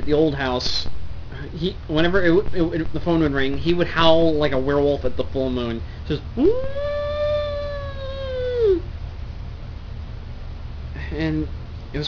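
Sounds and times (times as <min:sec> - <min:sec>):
man imitating dog howl: 0:06.4 - 0:08.8.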